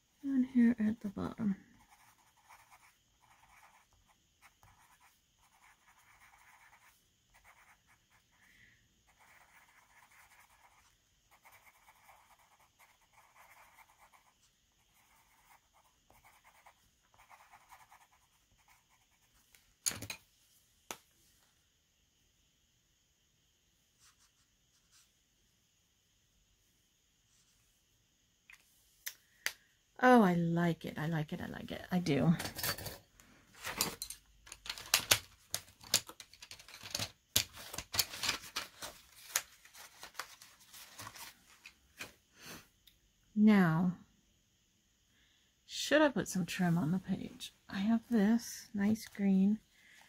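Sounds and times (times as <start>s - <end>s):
pencil scratching on paper: 1.8s - 8.3s, 9.1s - 19.4s.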